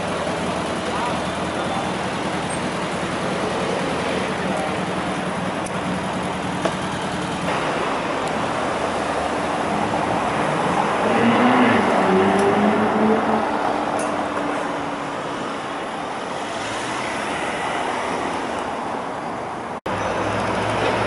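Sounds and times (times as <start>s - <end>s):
street traffic: 0.0s - 21.0s
car engine accelerating past: 9.8s - 13.6s.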